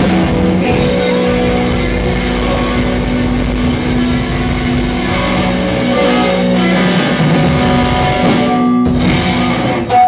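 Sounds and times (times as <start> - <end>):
distorted electric guitar chord: 0.0 - 10.0
live rock band playing: 0.0 - 10.0.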